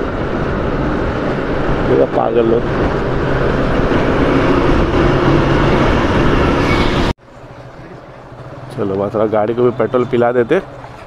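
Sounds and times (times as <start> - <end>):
motorcycle engine drone: 0.0 - 11.0
truck passing: 0.0 - 11.0
wind and road noise: 0.0 - 11.0.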